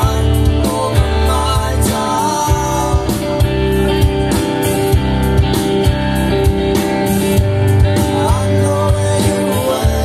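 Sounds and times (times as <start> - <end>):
bass guitar: 0.0 - 10.0
drum kit steady beat: 0.0 - 10.0
electric guitars: 0.0 - 10.0.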